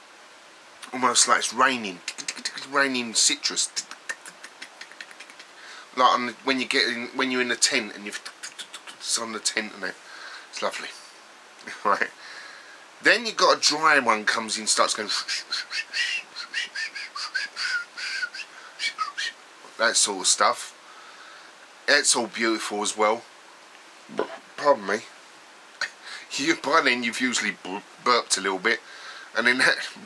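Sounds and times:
soft breath-like hiss: 0.8s - 6.1s, 8.1s - 13.0s, 14.8s - 20.0s, 20.6s - 21.8s, 23.8s - 26.6s, 28.6s - 29.9s.

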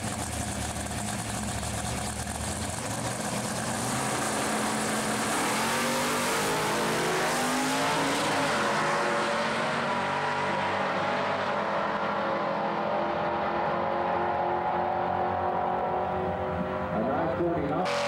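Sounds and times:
drag racing car engines: 0.0s - 18.0s.

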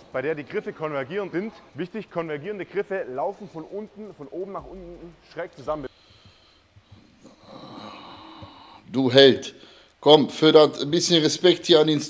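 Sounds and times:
person breathing out: 5.9s - 8.9s.

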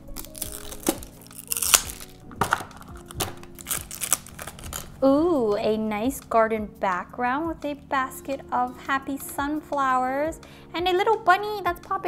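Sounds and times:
plastic capsule crinkling: 0.0s - 5.0s
soft background music: 0.0s - 12.0s.

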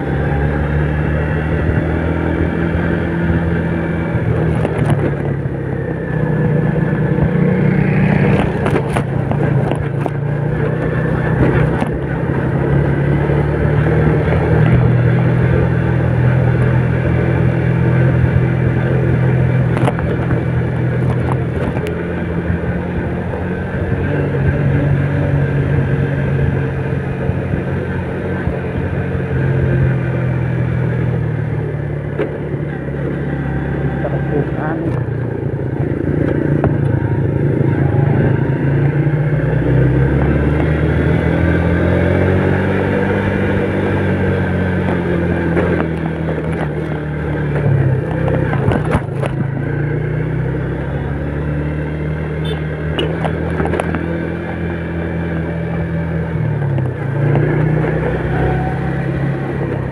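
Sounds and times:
motorcycle engine running: 0.0s - 59.9s
wind and road noise: 0.0s - 59.9s.

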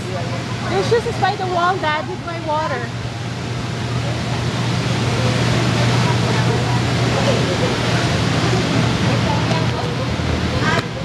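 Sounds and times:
faint children's voices: 3.6s - 11.0s.

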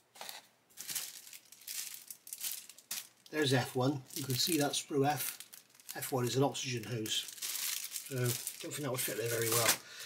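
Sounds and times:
plastic bag crinkling: 0.2s - 9.8s
plastic parts handled: 0.2s - 9.8s.

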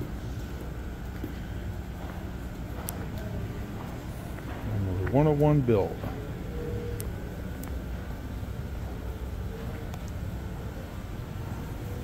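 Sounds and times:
low indoor hall rumble: 0.0s - 12.0s.

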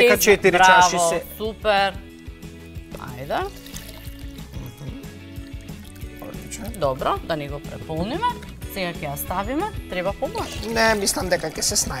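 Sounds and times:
background music: 0.0s - 12.0s
water pouring into plastic jug: 2.0s - 8.7s, 10.3s - 12.0s.

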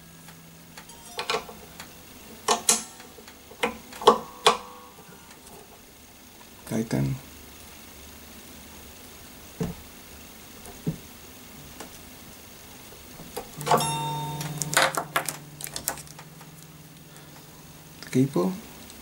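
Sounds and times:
acoustic guitar strings ringing: 0.0s - 5.5s, 13.3s - 19.0s
handling clicks and knocks: 0.8s - 4.8s, 13.2s - 16.6s.

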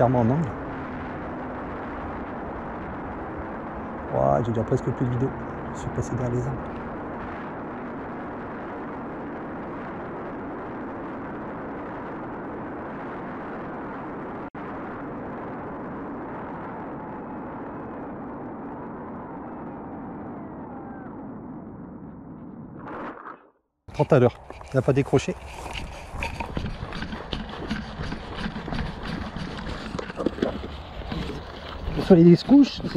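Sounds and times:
wind rushing over camera: 0.0s - 32.9s.

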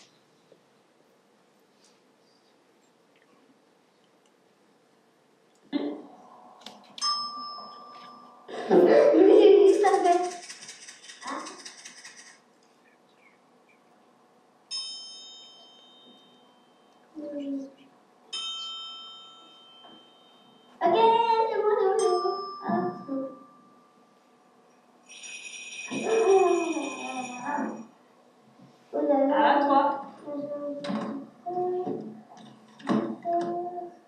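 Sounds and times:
percussion rattle shaken: 9.3s - 12.4s, 25.1s - 27.8s.

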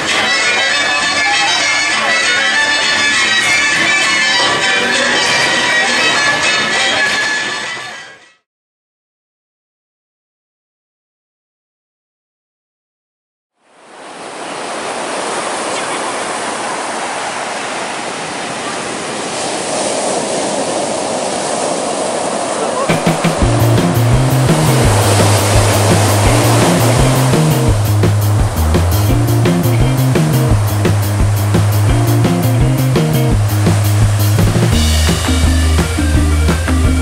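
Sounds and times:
ocean surf breaking: 0.0s - 8.1s, 13.7s - 37.0s
music with bass and drum beat: 22.9s - 37.0s.

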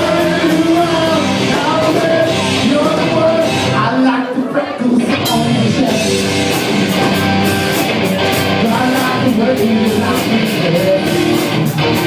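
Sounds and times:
live rock band: 0.0s - 12.0s.

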